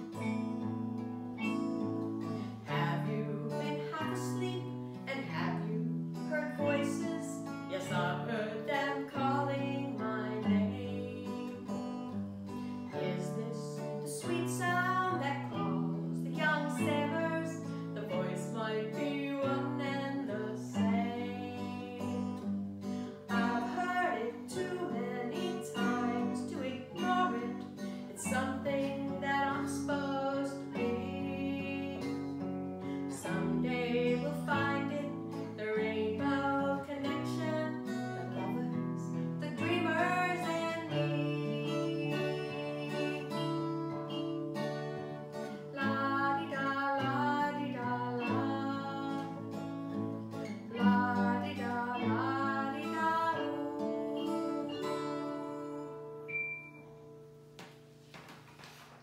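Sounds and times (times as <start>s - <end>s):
woman singing: 0.0s - 56.7s
strummed acoustic guitar: 0.0s - 59.0s.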